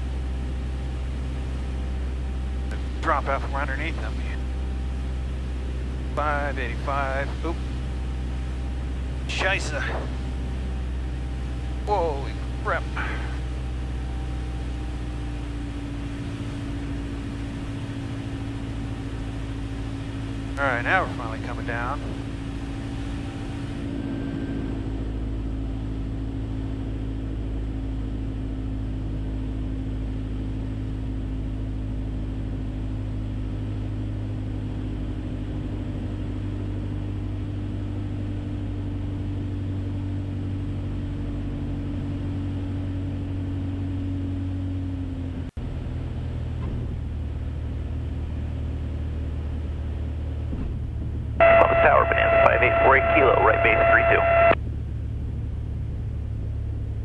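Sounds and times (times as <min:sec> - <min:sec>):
aircraft engine droning: 0:00.0 - 0:46.3, 0:47.1 - 0:57.0.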